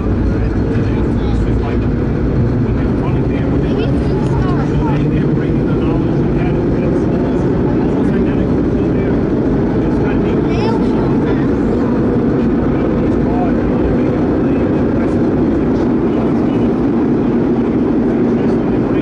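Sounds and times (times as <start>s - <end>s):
subway car wheels rumbling on rail: 0.0s - 19.0s.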